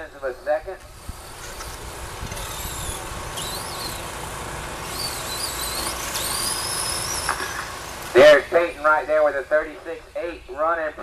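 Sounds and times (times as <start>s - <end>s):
high-pitched electric motor whines: 0.8s - 10.3s.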